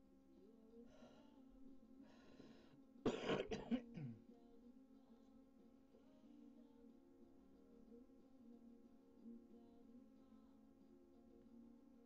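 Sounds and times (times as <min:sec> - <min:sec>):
faint steady hum: 0:00.0 - 0:12.0
person coughing: 0:03.1 - 0:04.2.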